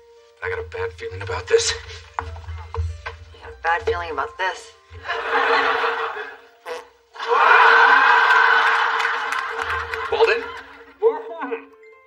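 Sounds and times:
studio audience laughing: 5.0s - 6.5s, 7.2s - 11.0s.

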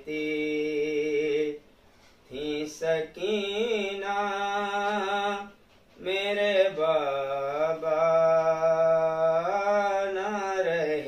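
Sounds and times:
man chanting: 0.0s - 1.6s, 2.3s - 11.0s.

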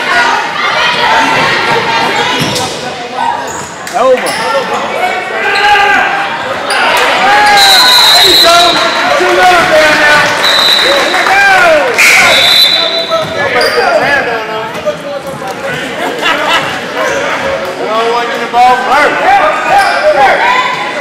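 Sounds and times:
sneakers squeaking on wooden floor: 3.4s - 4.7s, 12.4s - 14.3s
high steady whistle: 7.6s - 8.9s, 10.4s - 11.0s, 12.2s - 13.2s.

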